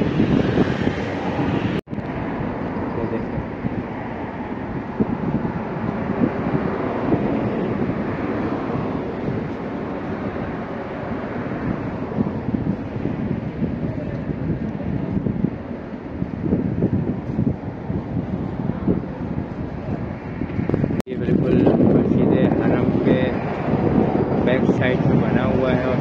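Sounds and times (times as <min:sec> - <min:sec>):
wind buffeting a microphone: 0:00.0 - 0:26.0.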